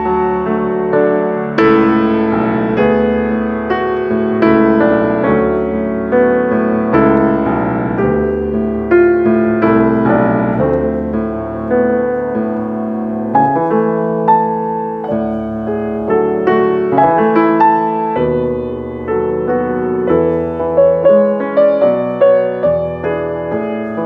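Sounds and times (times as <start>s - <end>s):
solo classical piano piece: 0.0s - 24.0s.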